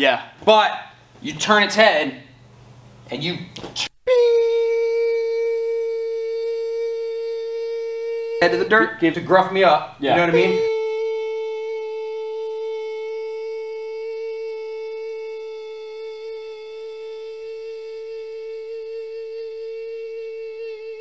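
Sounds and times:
person humming a sustained note: 4.1 - 21.0.

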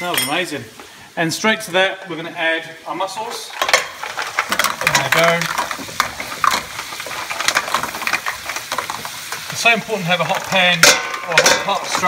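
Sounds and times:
butter sizzling: 0.0 - 12.0
mussel shells clattering in a pan: 3.3 - 12.0.

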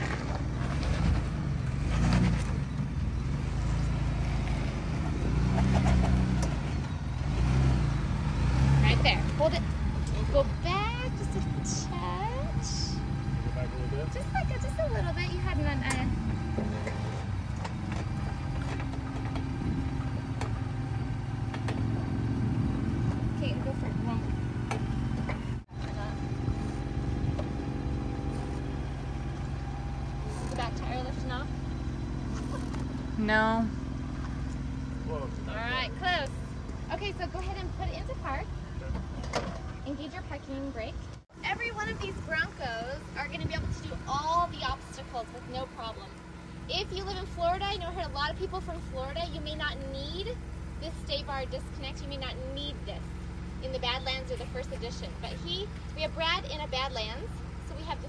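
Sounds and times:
truck engine rumbling: 0.0 - 58.0.

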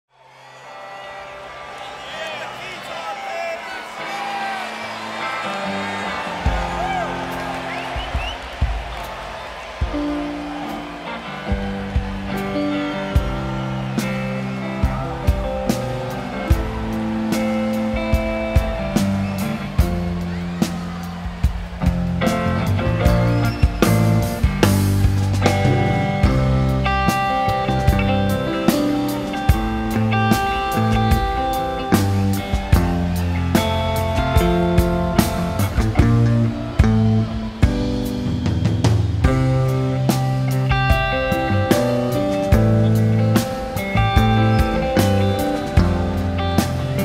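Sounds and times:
crowd cheering: 0.0 - 47.0
live rock band playing: 3.9 - 47.0.

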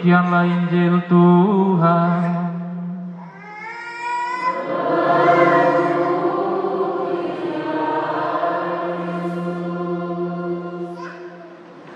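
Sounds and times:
choir singing held chord: 4.5 - 11.9.

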